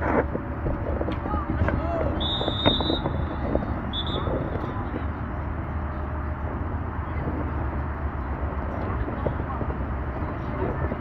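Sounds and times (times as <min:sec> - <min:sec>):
referee's whistle blast: 0:02.1 - 0:04.3.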